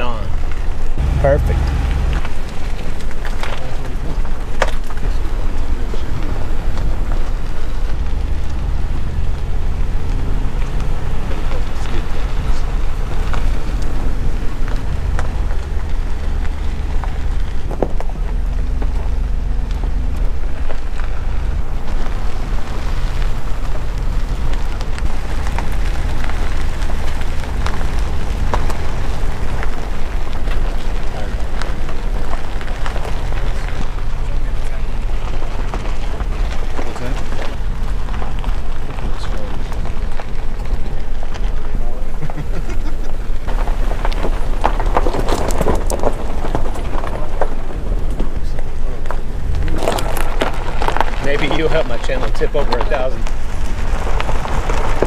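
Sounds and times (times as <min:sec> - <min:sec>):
gravel crackling under tyres: 0:00.0 - 0:55.0
vehicle engine and tyres rumbling: 0:00.0 - 0:55.0.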